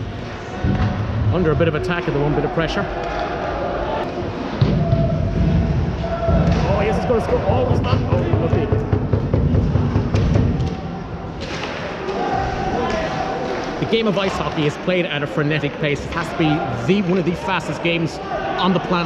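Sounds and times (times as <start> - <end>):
crowd voices echoing: 0.0 - 19.0
drum beating: 4.6 - 10.7.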